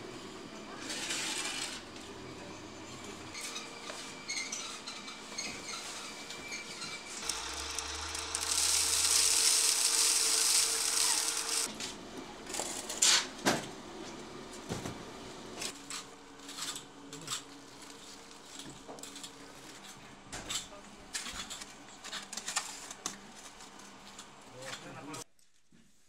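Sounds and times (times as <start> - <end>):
conveyor belt rattling: 7.2 - 11.7
loud hiss: 7.2 - 11.7
low motor hum: 7.2 - 11.7.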